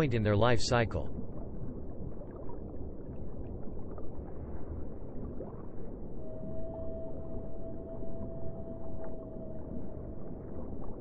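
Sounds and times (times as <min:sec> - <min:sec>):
low rough ambient drone: 0:06.1 - 0:11.0.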